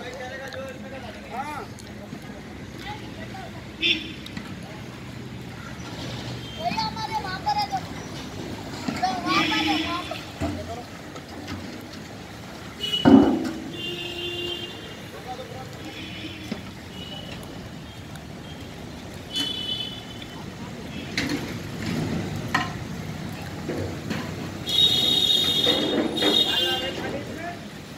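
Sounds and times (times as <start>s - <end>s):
street noise: 0.0s - 27.9s.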